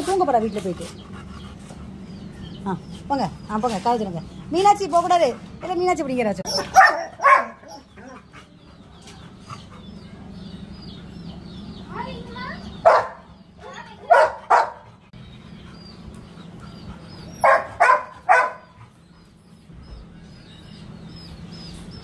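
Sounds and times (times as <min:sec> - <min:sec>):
dog barking: 0:06.5 - 0:07.8, 0:12.8 - 0:13.3, 0:14.0 - 0:14.9, 0:17.4 - 0:18.8.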